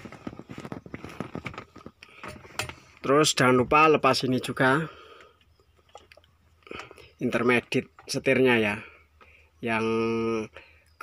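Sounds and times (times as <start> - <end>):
light handling clicks and knocks: 0.1 - 3.1, 5.2 - 8.3.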